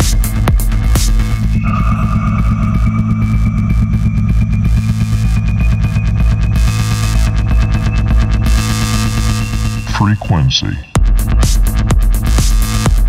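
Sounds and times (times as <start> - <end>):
heavy bass beat: 0.0 - 13.0
thin rising synth tone: 1.5 - 6.6.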